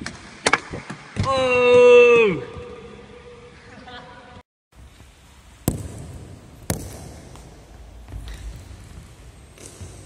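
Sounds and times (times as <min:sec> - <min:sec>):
stick hitting ball in hall: 0:04.8 - 0:10.0.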